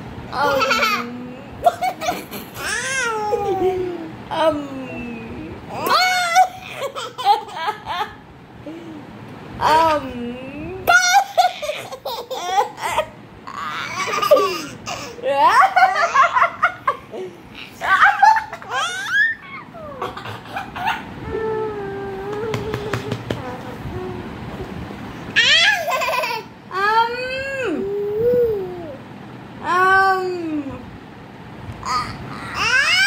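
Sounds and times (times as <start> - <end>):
baby laughing: 0.4 - 3.9, 5.7 - 8.2, 11.1 - 17.0, 17.8 - 21.2, 25.4 - 26.5
woman laughing: 14.1 - 18.8.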